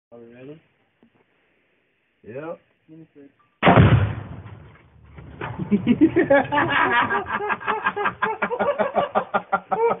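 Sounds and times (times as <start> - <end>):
person laughing hard: 5.6 - 10.0.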